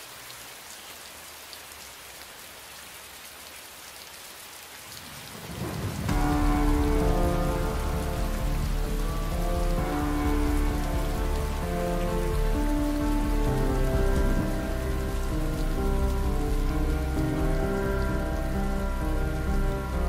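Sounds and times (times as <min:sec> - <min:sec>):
steady rain: 0:00.0 - 0:20.0
slow ambient music: 0:05.4 - 0:20.0.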